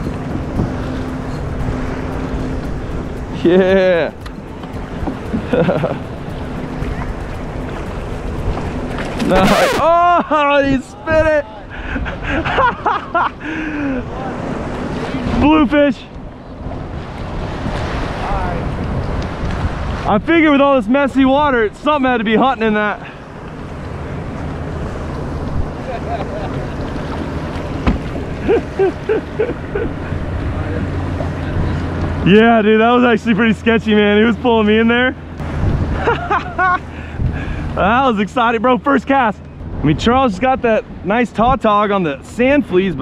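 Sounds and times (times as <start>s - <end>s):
wind buffeting microphone: 0.0s - 12.8s, 13.4s - 32.3s, 35.2s - 37.8s
water lapping against kayak: 4.1s - 9.9s, 16.2s - 20.3s, 23.0s - 32.2s
water sloshing around a kayak: 23.1s - 32.1s.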